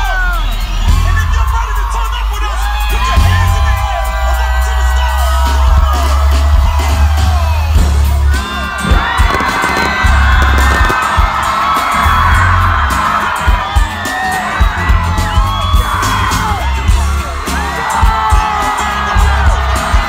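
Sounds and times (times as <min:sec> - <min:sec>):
crowd screaming and whooping: 0:00.0 - 0:20.0
music with deep bass: 0:00.0 - 0:20.0.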